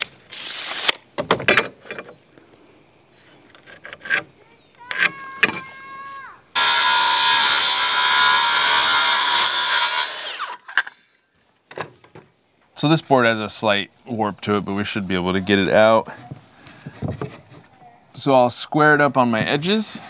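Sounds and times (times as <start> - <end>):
circular saw cutting board: 6.6 - 11.0.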